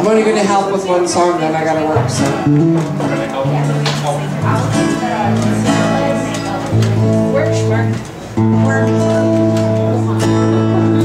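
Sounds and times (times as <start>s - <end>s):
acoustic guitars strumming chords: 0.0s - 11.0s
bass guitar: 1.9s - 11.0s.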